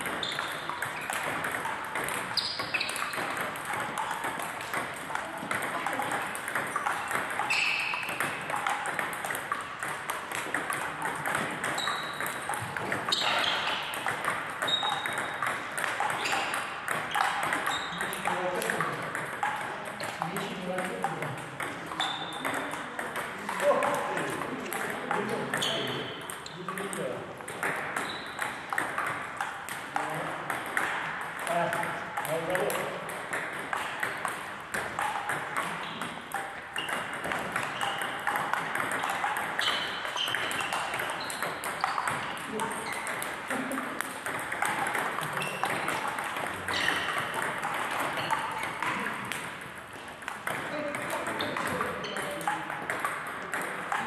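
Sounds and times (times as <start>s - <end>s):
table tennis balls clicking: 0.0s - 54.0s.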